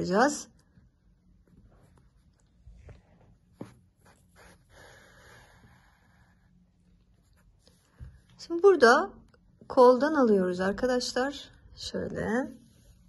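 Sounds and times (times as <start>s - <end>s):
soft brushing sound: 1.4s - 5.0s, 12.3s - 13.0s.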